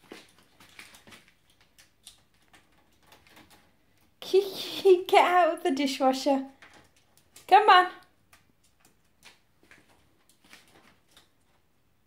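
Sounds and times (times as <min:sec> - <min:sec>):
bird claws and beak ticking on wire: 0:00.2 - 0:04.1.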